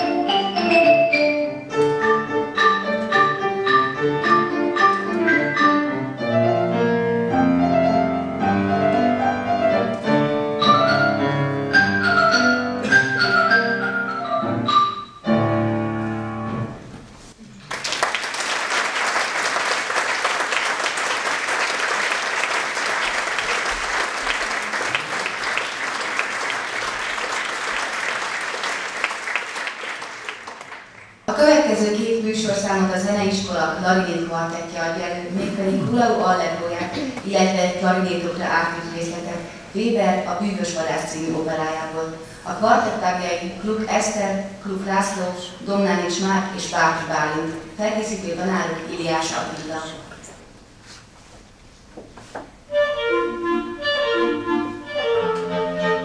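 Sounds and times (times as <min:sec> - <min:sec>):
marimba folk song: 0:00.0 - 0:15.9
piano accompaniment: 0:00.0 - 0:17.1, 0:52.7 - 0:56.0
audience applause: 0:17.6 - 0:31.2.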